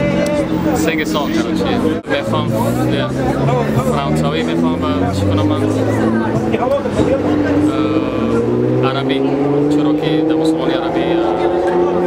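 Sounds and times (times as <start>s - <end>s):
man talking: 0.0s - 12.0s
vehicle engine running: 0.0s - 12.0s.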